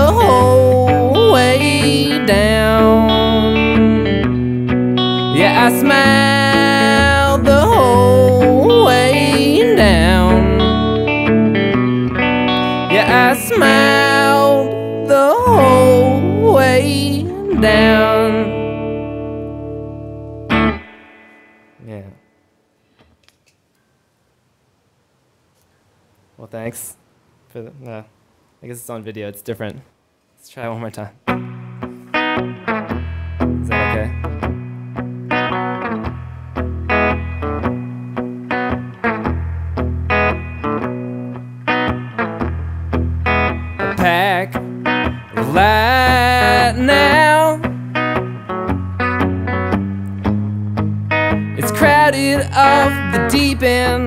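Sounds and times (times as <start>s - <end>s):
wordless vocal with vibrato: 0.0s - 4.3s, 5.1s - 11.1s, 12.5s - 18.8s, 33.6s - 34.2s, 43.8s - 44.7s, 45.3s - 47.7s, 51.6s - 54.0s
person singing: 0.0s - 4.4s, 5.1s - 11.2s, 12.5s - 18.8s, 33.6s - 34.3s, 43.8s - 47.8s, 51.6s - 54.0s
electric guitar through amp: 0.0s - 22.3s, 31.2s - 54.0s
guitar handling clicks: 22.9s - 23.8s.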